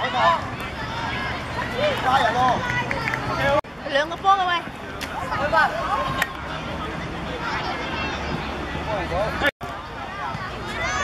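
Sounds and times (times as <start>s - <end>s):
voices shouting and calling out: 0.0s - 11.0s.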